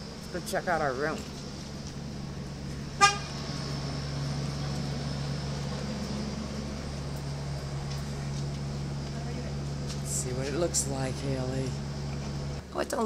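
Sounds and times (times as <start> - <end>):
steady low hum: 0.0 - 12.8
short car horn toot: 3.0 - 3.3.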